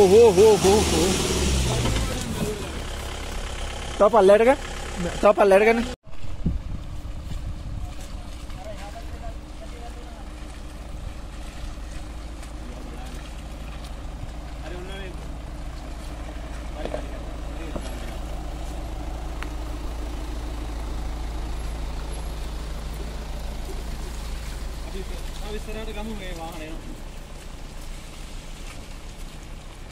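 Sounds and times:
engines crawling over rocky track: 0:00.0 - 0:05.9, 0:07.1 - 0:29.9.

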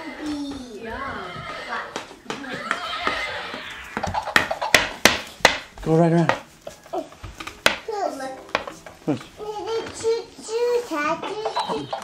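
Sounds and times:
horse-like whinny: 0:01.2 - 0:04.0.

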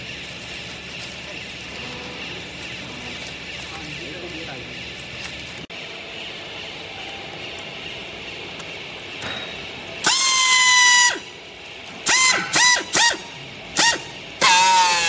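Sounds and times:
strapping tool high-pitched squeals: 0:10.0 - 0:11.3, 0:12.0 - 0:15.0.

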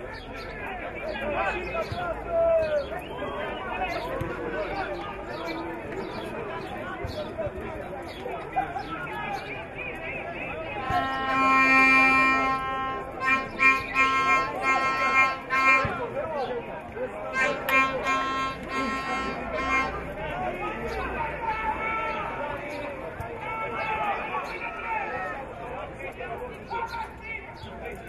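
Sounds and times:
spectators shouting and chattering: 0:00.0 - 0:28.0
horn blasts: 0:10.8 - 0:16.1, 0:17.3 - 0:20.2.

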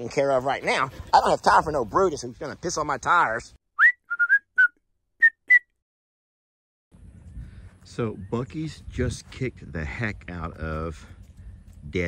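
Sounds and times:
short high whistled notes: 0:03.8 - 0:05.8.

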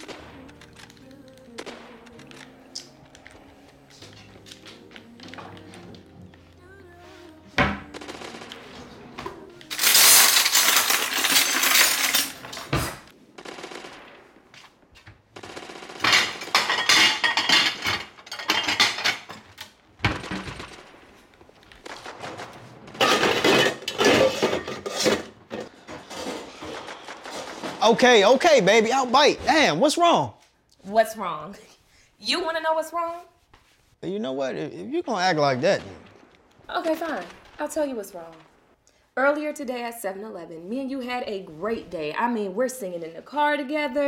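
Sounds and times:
game music: 0:00.0 - 0:09.8
kitchen clatter: 0:09.7 - 0:13.1, 0:16.0 - 0:20.8, 0:23.0 - 0:28.5
sharp bangs: 0:20.0 - 0:29.8.

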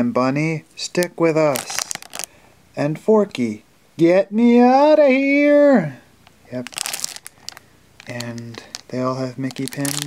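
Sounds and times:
plastic packaging crinkling: 0:01.0 - 0:02.4, 0:06.2 - 0:10.0.

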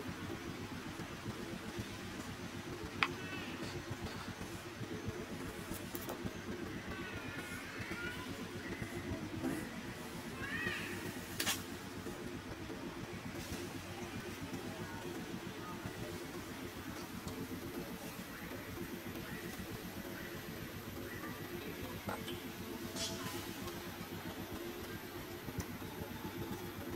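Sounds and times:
low background rumble: 0:00.0 - 0:26.9.

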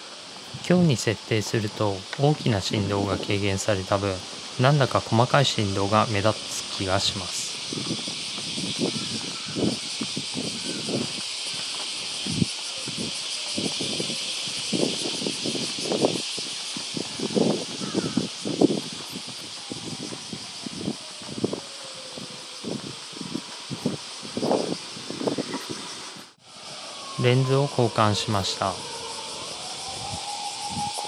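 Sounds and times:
outdoor ambience hiss: 0:00.0 - 0:31.0
footsteps on pavement: 0:07.5 - 0:14.3, 0:16.5 - 0:24.0.

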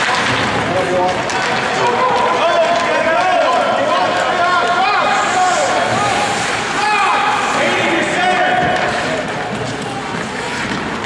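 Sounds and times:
ice rink noise: 0:00.0 - 0:11.0.

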